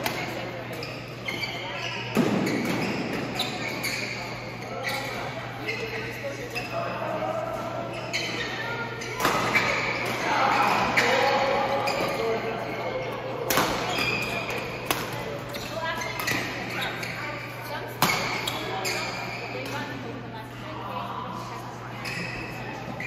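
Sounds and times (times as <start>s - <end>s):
voices in echoing hall: 0.0s - 23.0s.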